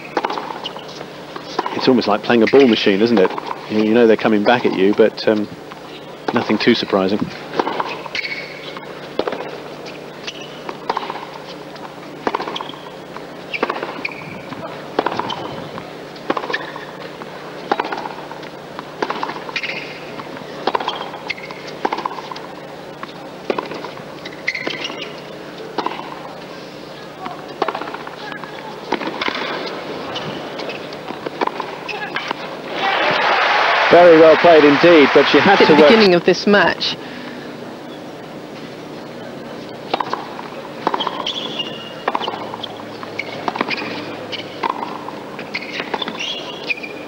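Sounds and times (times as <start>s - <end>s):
racket striking tennis ball: 0.0s - 0.8s, 7.5s - 9.5s, 10.3s - 11.3s, 13.5s - 14.2s, 14.9s - 15.6s, 16.2s - 17.0s, 17.6s - 18.2s, 18.8s - 26.3s, 27.2s - 36.0s, 39.9s - 46.8s
crowd applause: 32.7s - 36.1s.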